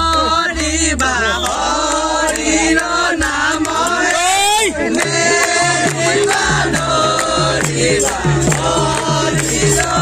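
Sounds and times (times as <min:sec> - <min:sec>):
group devotional chanting: 0:00.0 - 0:10.0.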